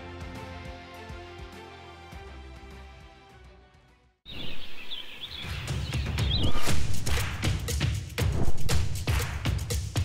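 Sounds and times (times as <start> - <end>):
birds chirping: 4.3 - 7.1
low thudding music beat: 5.7 - 10.0.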